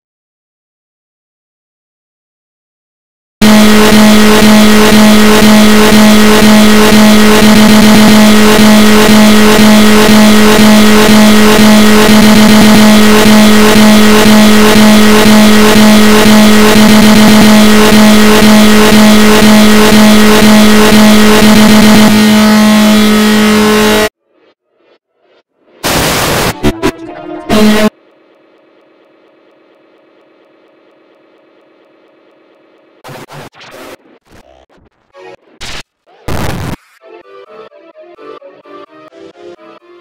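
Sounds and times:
harsh distorted electronic buzz: 0:03.4 - 0:37.2.

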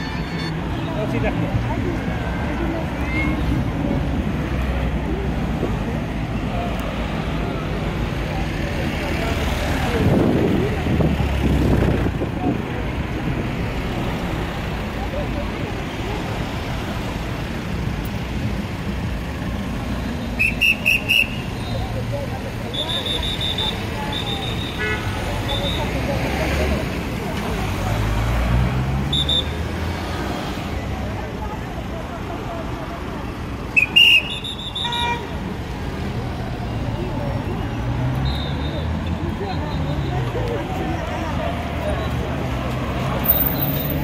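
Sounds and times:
cars driving past: 0:00.0 - 0:44.0.

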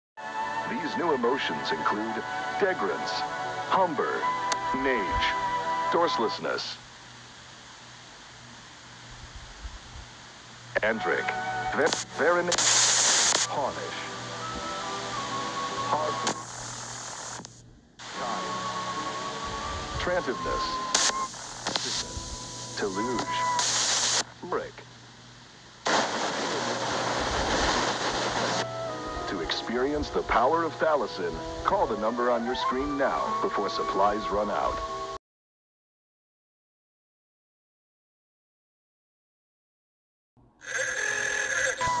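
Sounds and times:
background music of held tones: 0:00.2 - 0:06.8, 0:10.7 - 0:16.8, 0:18.0 - 0:24.2, 0:28.6 - 0:35.2, 0:40.7 - 0:42.0
tv static hiss: 0:00.2 - 0:35.2, 0:40.6 - 0:42.0
person narrating: 0:22.8 - 0:23.5, 0:29.2 - 0:34.8.

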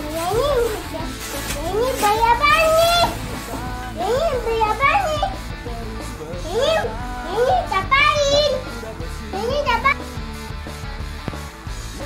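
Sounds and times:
children calling out and chattering: 0:00.0 - 0:10.2
faint background music: 0:00.0 - 0:12.0.

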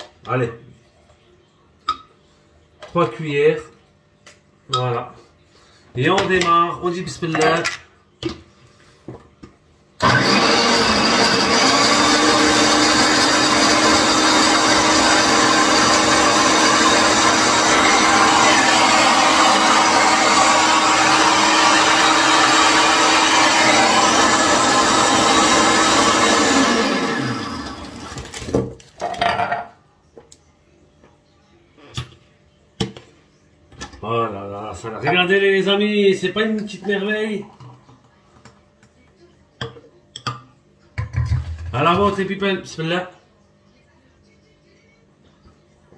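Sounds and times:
blender motor running: 0:10.0 - 0:28.4.

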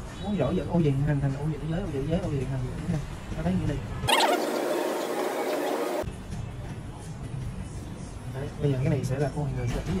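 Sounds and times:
short rising chirp: 0:04.1 - 0:06.0.

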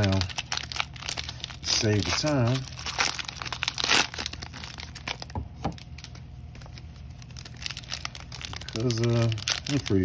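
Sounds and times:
foil wrapper crinkling and tearing: 0:00.0 - 0:10.0.

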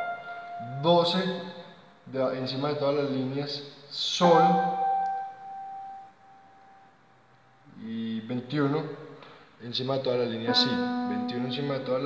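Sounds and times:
piano note ringing: 0:00.0 - 0:02.0, 0:04.2 - 0:06.9, 0:10.5 - 0:12.0.

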